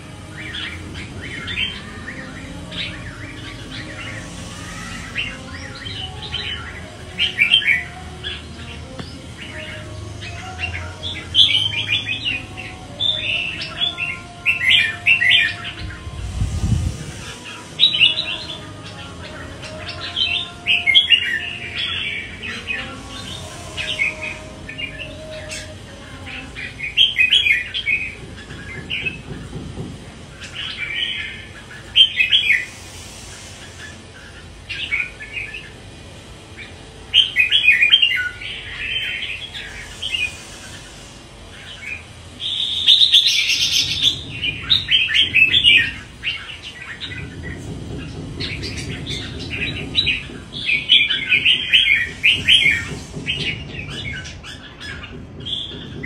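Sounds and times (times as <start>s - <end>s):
bird singing warbled phrases: 0.0s - 56.0s.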